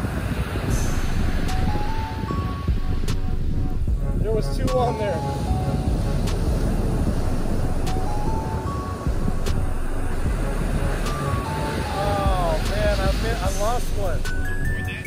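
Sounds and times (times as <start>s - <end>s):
background music with held notes: 0.3s - 15.0s
surf breaking on beach: 10.6s - 14.1s.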